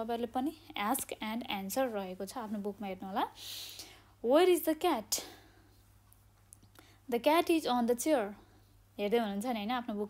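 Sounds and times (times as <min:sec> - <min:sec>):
short breath: 0:03.4 - 0:04.2.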